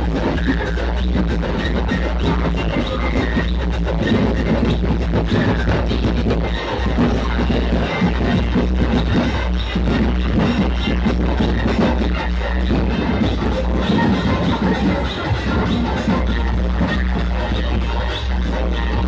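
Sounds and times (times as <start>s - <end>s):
electronic dance music with heavy bass: 0.0s - 19.0s.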